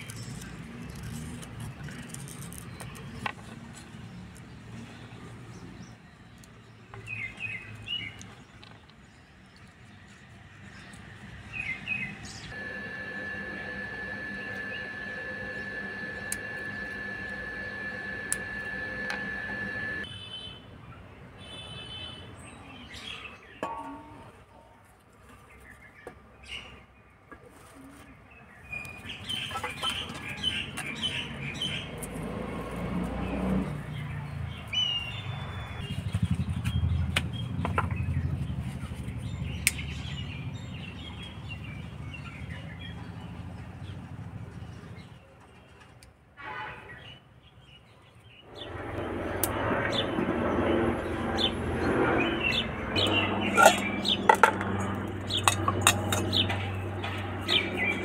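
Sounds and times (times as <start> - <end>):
steady high-pitched tone: 12.5 - 20.1
birds chirping: 28.1 - 32.5, 46.9 - 58.0.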